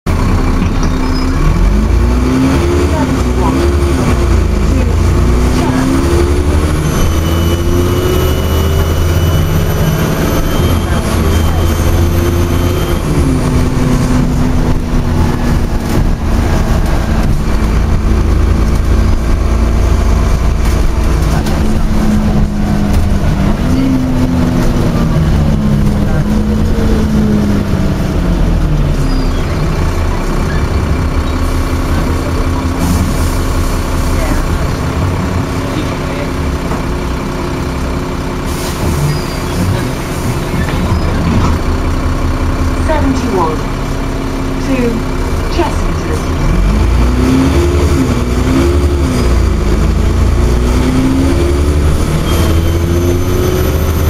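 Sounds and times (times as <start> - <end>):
bus engine humming: 0.1 - 54.0.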